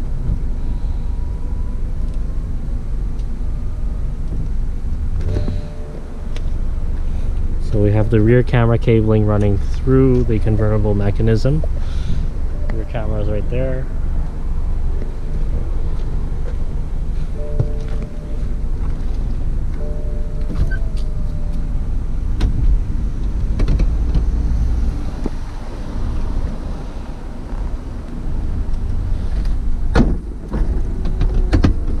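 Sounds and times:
motor hum: 13.6s - 31.6s.

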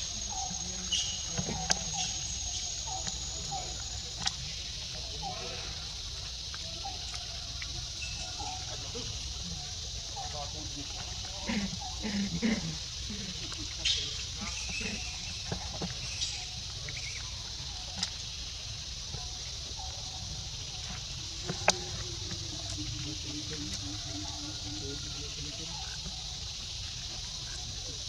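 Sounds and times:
high-pitched insect drone: 0.0s - 28.0s.

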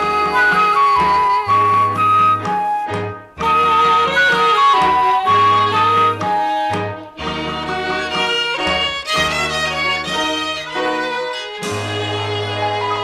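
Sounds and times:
lead melody of held notes: 0.0s - 13.0s.

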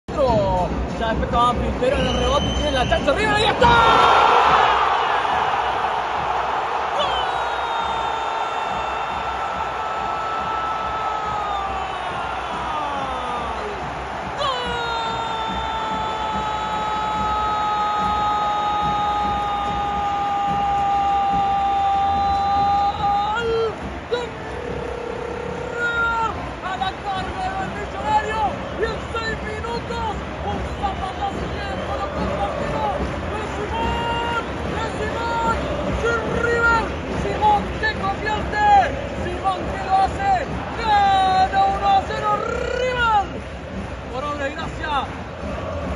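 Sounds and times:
stadium crowd roaring: 0.2s - 45.9s
person shouting excitedly: 14.4s - 23.5s.

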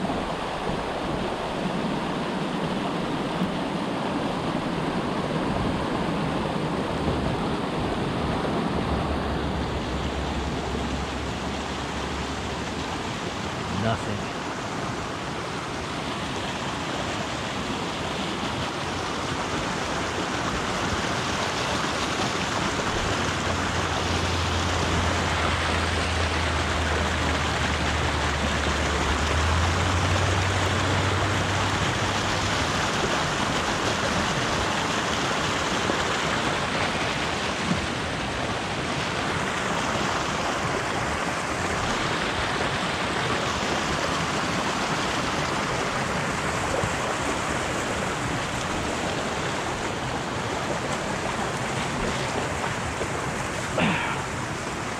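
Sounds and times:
stream rushing over rocks: 0.0s - 54.9s.

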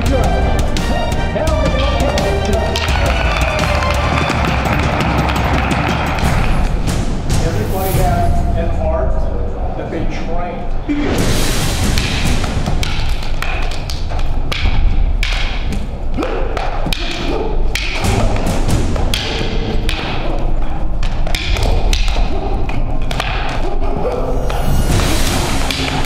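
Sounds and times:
sticks clacking together: 0.0s - 6.7s, 11.9s - 26.0s.

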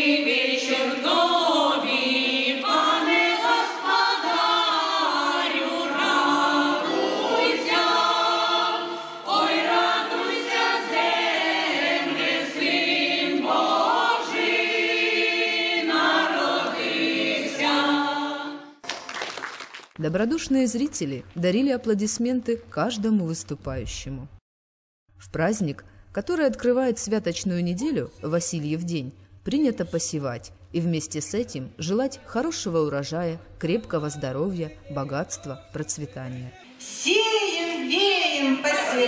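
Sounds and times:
women's choir singing a carol: 0.0s - 18.8s, 36.8s - 39.0s.

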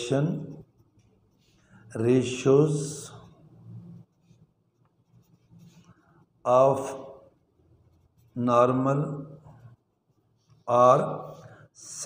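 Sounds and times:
ballpoint pen scratching on paper: 0.4s - 1.8s, 4.0s - 6.2s, 7.8s - 8.8s.

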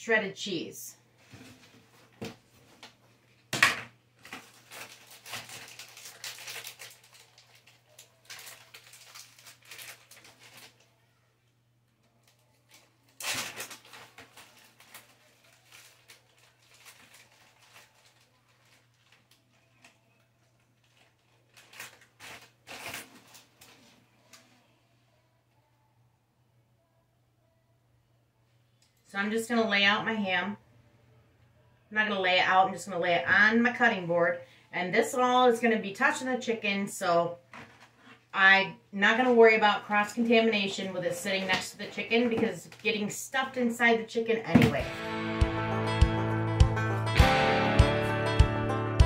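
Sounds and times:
plastic rustling and crinkling: 1.2s - 3.6s, 4.2s - 11.1s, 12.0s - 24.7s, 37.5s - 38.3s, 39.2s - 43.1s.

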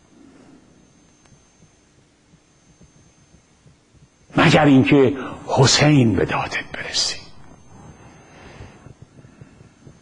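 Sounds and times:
faint steady hum: 0.0s - 10.0s
soft low thumps: 1.3s - 4.3s, 7.3s - 10.0s.

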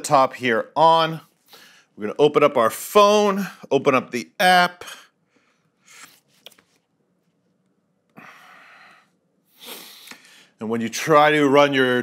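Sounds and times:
man breathing faintly: 1.3s - 2.0s, 8.1s - 10.6s.

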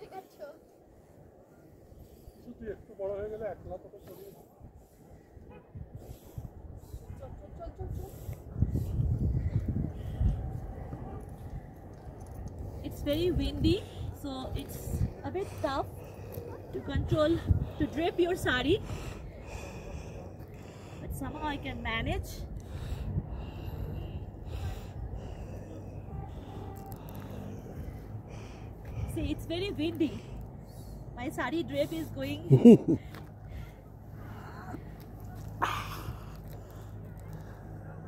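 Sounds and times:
wind buffeting microphone: 4.5s - 31.4s.

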